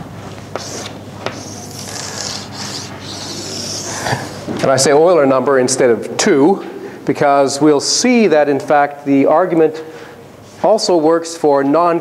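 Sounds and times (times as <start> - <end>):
chalk tapping on blackboard: 0.5 - 3.9
chalk scratching on blackboard: 0.5 - 4.4.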